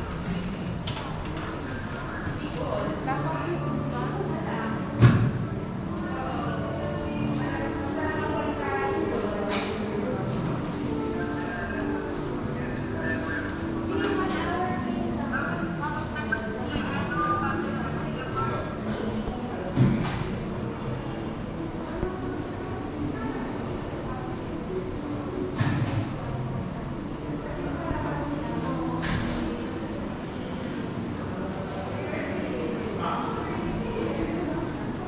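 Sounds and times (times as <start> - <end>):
indistinct chatter of voices: 0.0 - 35.0.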